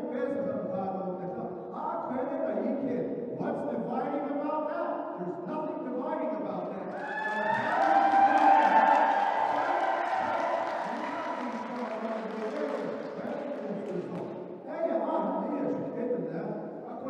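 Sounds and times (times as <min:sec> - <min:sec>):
man speaking over pa: 0:00.0 - 0:17.0
audience cheering and applause: 0:06.9 - 0:14.3.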